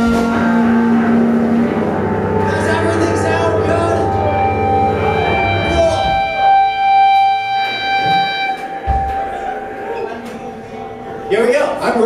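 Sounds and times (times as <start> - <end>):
electric guitar feedback: 0.0 - 12.0.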